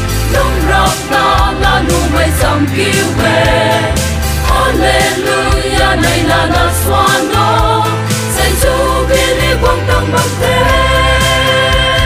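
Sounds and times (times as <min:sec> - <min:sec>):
choir singing in harmony: 0:00.0 - 0:12.0
instrumental backing with beat: 0:00.0 - 0:12.0.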